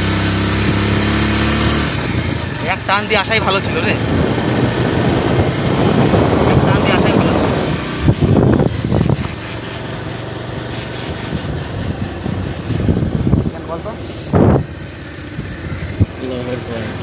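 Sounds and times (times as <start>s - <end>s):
motorcycle engine hum: 0.0s - 17.0s
wind rushing over microphone: 1.9s - 10.1s, 10.9s - 16.2s.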